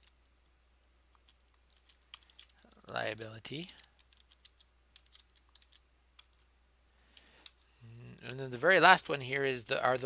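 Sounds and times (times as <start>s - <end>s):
typing on computer keyboard: 3.7s - 6.4s.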